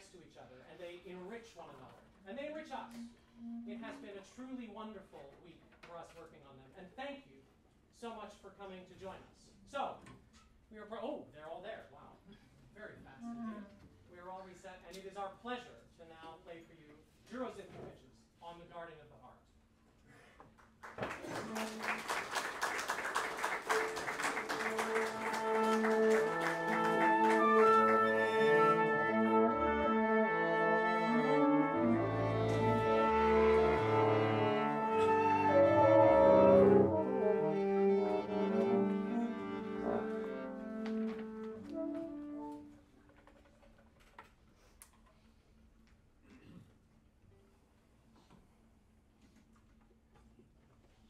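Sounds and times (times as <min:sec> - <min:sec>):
chamber ensemble playing: 0:02.8 - 0:04.4, 0:23.6 - 0:42.7.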